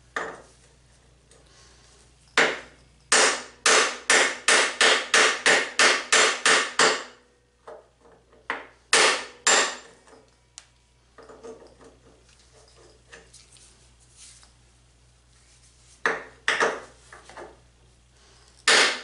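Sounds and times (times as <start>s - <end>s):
hammer striking metal punch: 2.4s - 7.2s, 8.5s - 9.9s, 18.6s - 19.0s.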